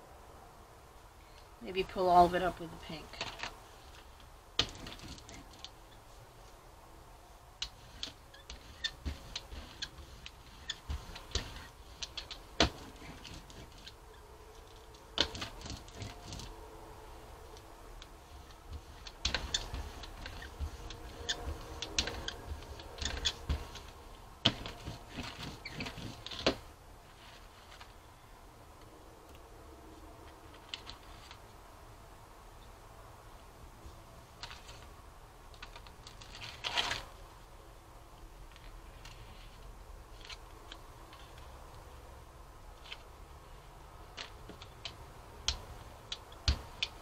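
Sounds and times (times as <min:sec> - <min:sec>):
rubber brayer rolling paint: 0:02.3 - 0:06.6, 0:07.6 - 0:28.2, 0:42.8 - 0:47.0.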